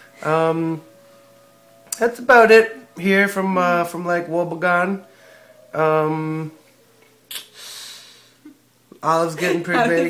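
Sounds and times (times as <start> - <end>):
breathy hiss: 5.0 - 6.5, 7.3 - 8.5
sharp burst of breath: 7.3 - 8.5.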